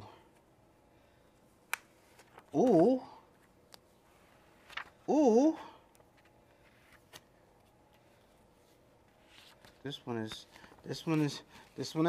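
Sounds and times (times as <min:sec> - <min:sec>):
faint steady hum: 0:00.0 - 0:12.0
paper sheet rustling: 0:04.2 - 0:05.1, 0:09.1 - 0:11.9.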